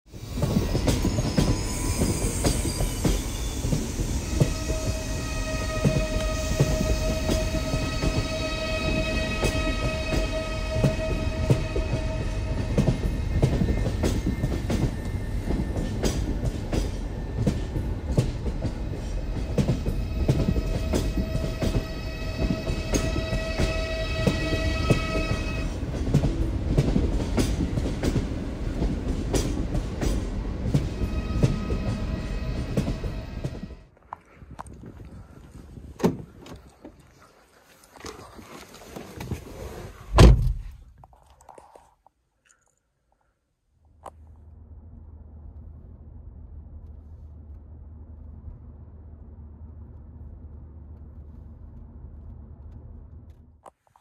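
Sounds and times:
train rumbling on rails: 0.1s - 34.6s, 44.3s - 53.4s.

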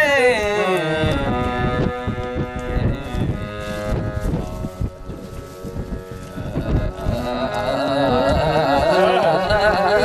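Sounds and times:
harmonium chord: 0.0s - 10.0s
hand drum strokes: 1.0s - 10.0s.

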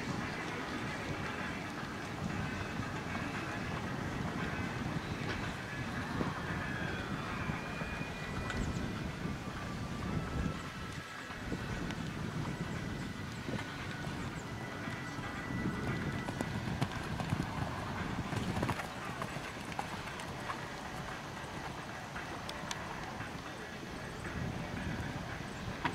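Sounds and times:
horse hoofbeats on sand: 0.0s - 8.9s, 10.1s - 25.9s.

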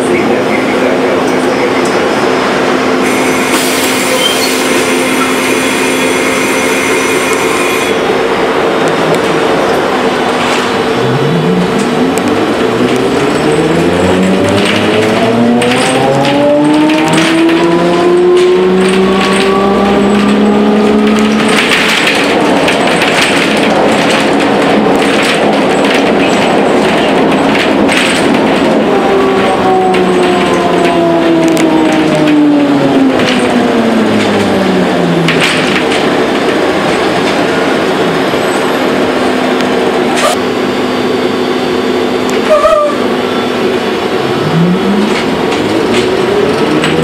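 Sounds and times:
road rumble: 0.0s - 47.0s.

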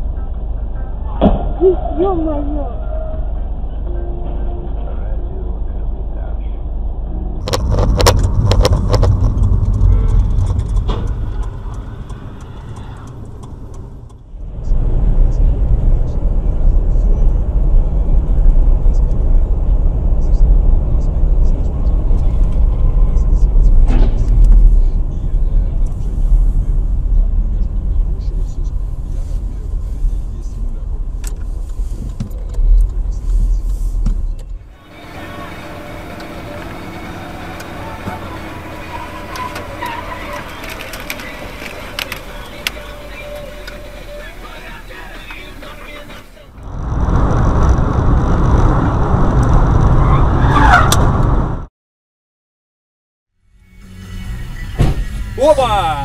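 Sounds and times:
road and engine noise in car: 0.0s - 51.7s, 53.3s - 56.0s.

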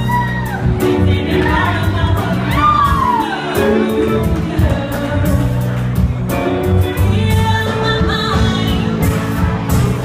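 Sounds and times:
woman singing: 0.0s - 9.6s
live band playing: 0.0s - 10.0s.

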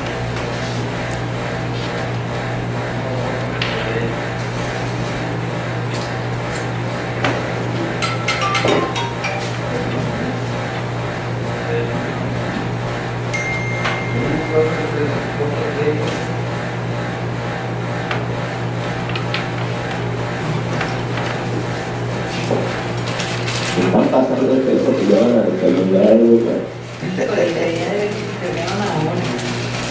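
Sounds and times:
low electrical hum: 0.0s - 29.9s.

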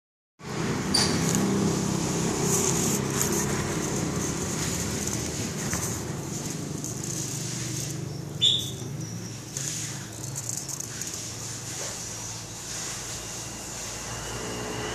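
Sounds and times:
car engine idling: 0.7s - 8.4s.

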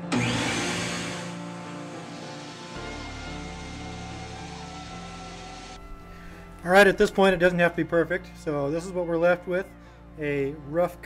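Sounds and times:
bandsaw winding down: 0.0s - 6.5s
background music: 0.0s - 11.0s.

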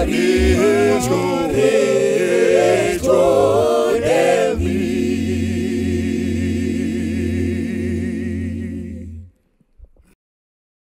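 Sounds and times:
a cappella group singing: 0.0s - 9.4s.

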